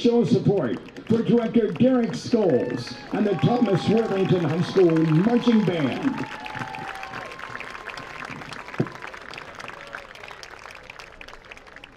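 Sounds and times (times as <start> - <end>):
distant crowd applauding: 0.0 - 11.9.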